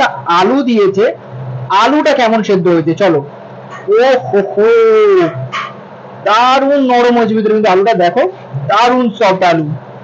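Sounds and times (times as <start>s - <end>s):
man exclaiming: 3.9s - 5.5s.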